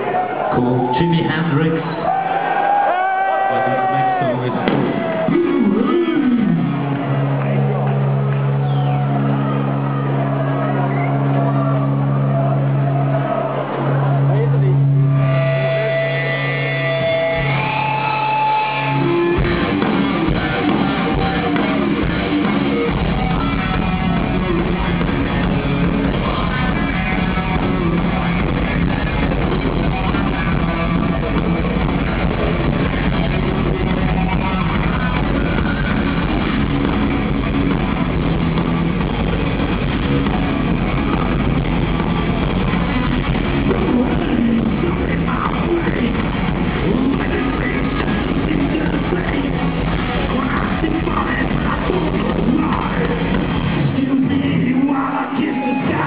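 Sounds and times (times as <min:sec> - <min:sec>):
bass guitar: 0:00.0 - 0:56.0
distorted electric guitar: 0:00.0 - 0:56.0
drums crashing: 0:04.4 - 0:13.9, 0:15.0 - 0:54.0.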